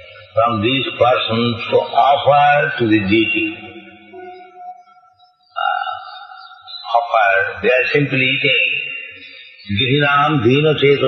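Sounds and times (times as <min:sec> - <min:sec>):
steady pitched tone: 0:00.0 - 0:06.4.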